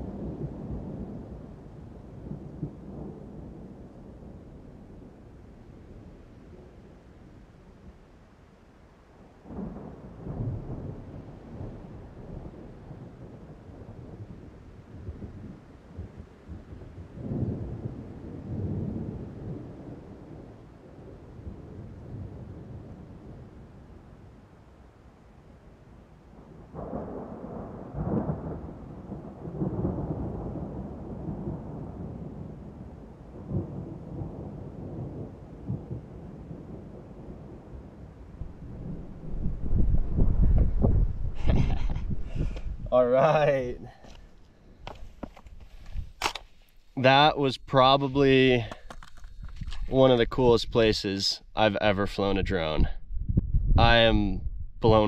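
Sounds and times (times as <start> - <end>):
wind buffeting microphone: 9.4 - 24.3, 26.6 - 55.0.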